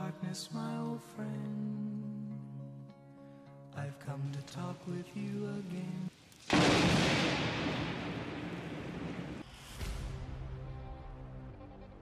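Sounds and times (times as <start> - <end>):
thunderclap: 6.4 - 10.8.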